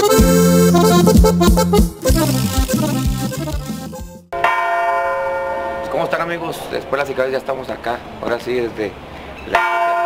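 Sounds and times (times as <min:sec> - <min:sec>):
large church bell ringing: 0:04.3 - 0:07.7, 0:09.5 - 0:10.0.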